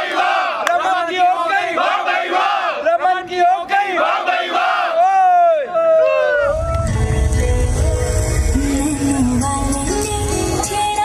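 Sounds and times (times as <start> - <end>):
young men chanting: 0.0 - 5.0.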